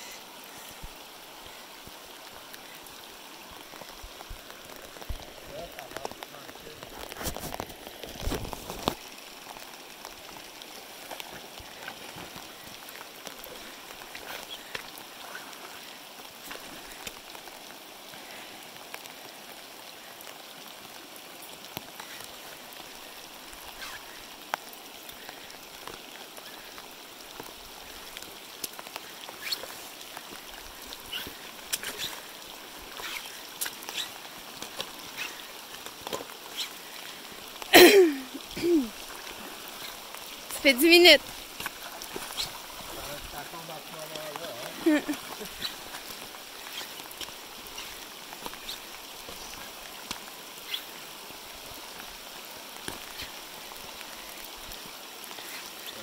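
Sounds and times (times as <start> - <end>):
flowing water: 0.0 - 56.0
rain on river and rocks: 0.0 - 56.0.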